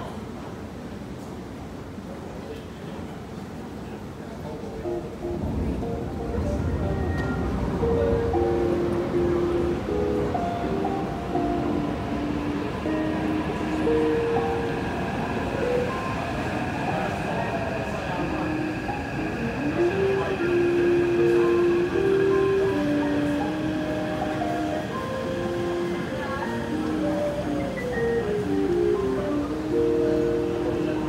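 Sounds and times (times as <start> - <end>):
metro train rumble and whine: 0.0 - 31.0
train-approach chime melody: 4.8 - 31.0.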